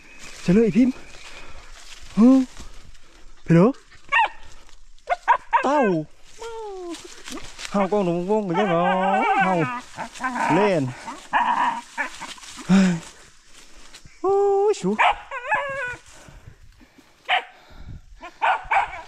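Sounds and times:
man speaking: 0.4 - 1.0, 2.1 - 2.6, 3.5 - 3.8, 5.6 - 7.0, 7.7 - 11.0, 14.2 - 15.1
dog barking: 4.1 - 4.4, 5.1 - 6.0, 8.5 - 9.8, 15.0 - 15.8, 17.3 - 17.6, 18.3 - 19.0.

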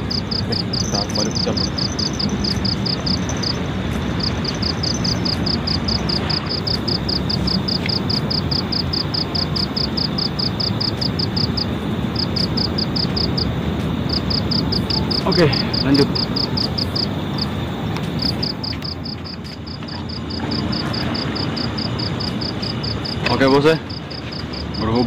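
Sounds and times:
night insects chirping: 0.0 - 25.0
steady rushing background noise: 0.0 - 25.0.

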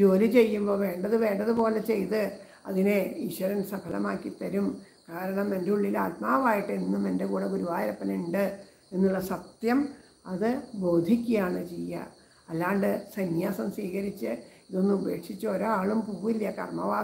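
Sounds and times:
woman speaking: 0.0 - 17.0.

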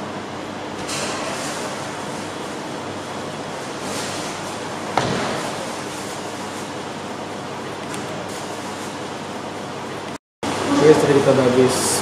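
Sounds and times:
restaurant background hiss: 9.9 - 12.0.

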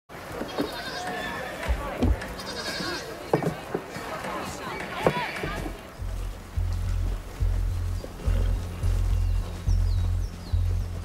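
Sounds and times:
busy farmyard background: 0.1 - 11.0
farm animals bleating: 0.5 - 1.6, 2.4 - 3.2
short low thumps: 5.5 - 11.0.

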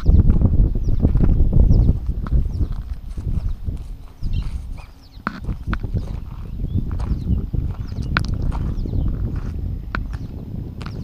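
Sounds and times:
wind rumble on microphone: 0.0 - 11.0
footsteps: 0.3 - 11.0.

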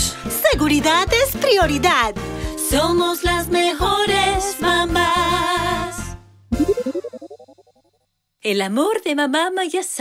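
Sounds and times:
cartoon transition jingle: 6.5 - 7.9.

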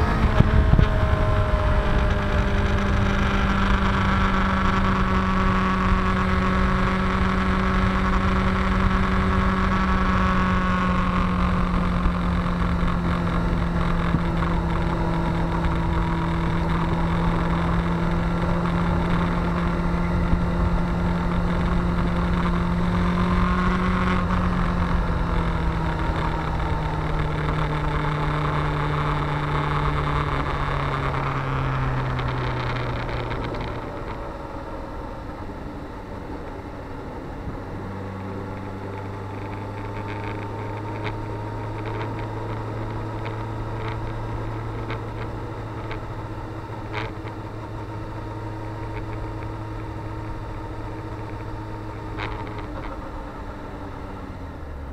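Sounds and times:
motorcycle engine running: 0.0 - 54.9
wind and road noise: 0.0 - 54.9.

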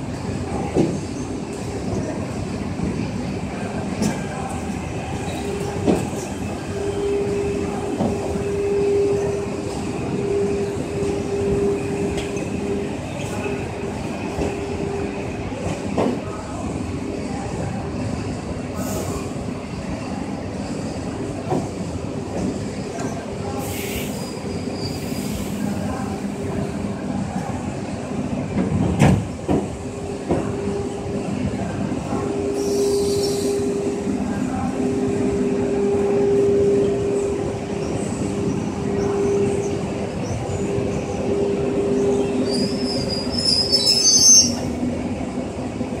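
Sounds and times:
electric train running hum: 0.0 - 46.0
high wheel squeal: 23.9 - 25.4, 42.4 - 44.6.

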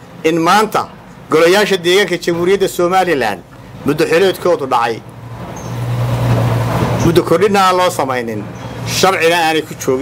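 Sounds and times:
motor vehicle passing: 3.4 - 10.0.

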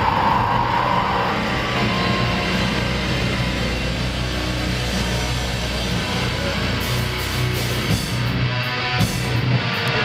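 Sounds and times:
amplified metal guitars and bass: 0.0 - 10.0.

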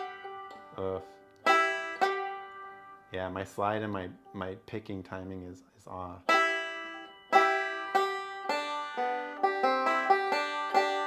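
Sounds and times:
banjo plucked notes: 0.0 - 4.6, 6.2 - 11.0.

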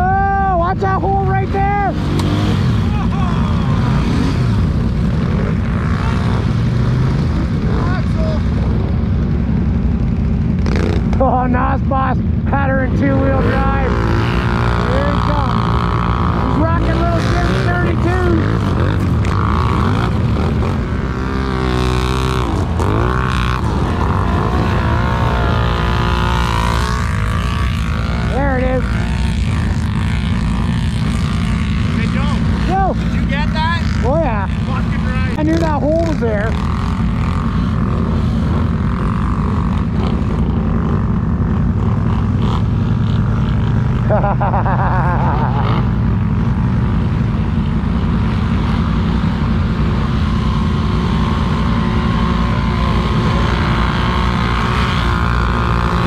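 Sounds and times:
quad bike engine running: 0.0 - 56.0
quad bikes revving: 0.0 - 56.0.

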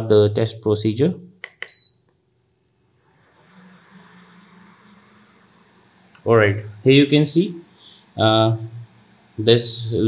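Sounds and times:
cooling fan whirring: 2.8 - 10.0.

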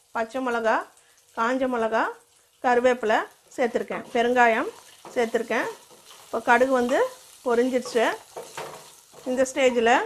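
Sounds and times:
food sizzling in hot oil: 0.0 - 10.0
wooden spatula stirring: 4.0 - 10.0.

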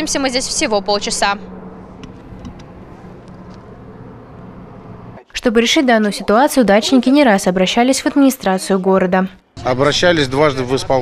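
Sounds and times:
heavy truck engines rumbling: 0.0 - 8.8.

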